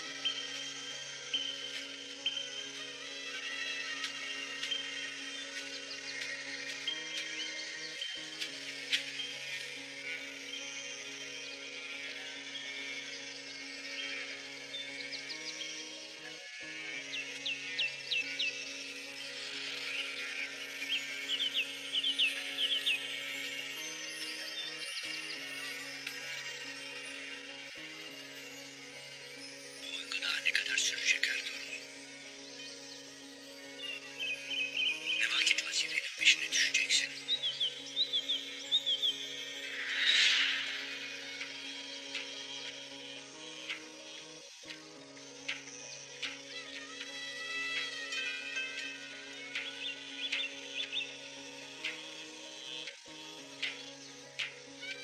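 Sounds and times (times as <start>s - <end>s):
slow music of held chords: 0.0s - 55.0s
high bird chirps: 33.8s - 43.0s.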